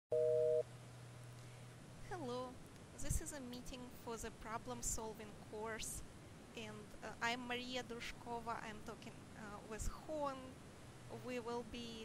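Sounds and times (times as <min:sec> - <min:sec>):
two-tone electronic beep: 0:00.1 - 0:00.6
faint low hum: 0:00.1 - 0:12.0.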